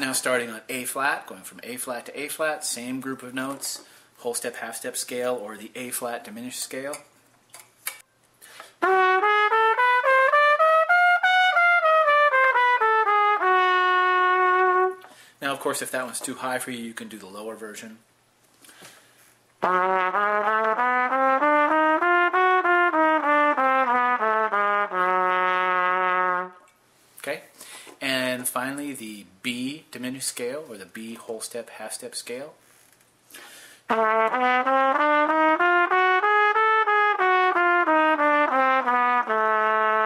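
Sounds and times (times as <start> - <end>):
soft breath: 8.4 - 8.8, 15.1 - 15.4, 18.6 - 19.4, 27.0 - 28.0, 33.3 - 33.9
trumpet playing steady note: 8.8 - 15.1, 19.6 - 26.7, 33.9 - 40.0.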